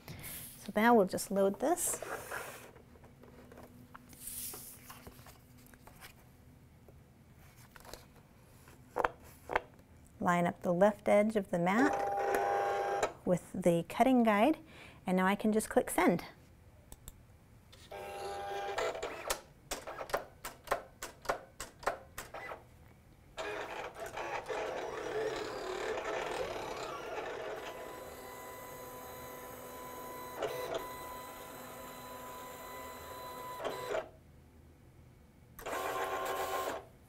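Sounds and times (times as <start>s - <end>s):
cutting machine motors whirring: 23.4s - 34.0s.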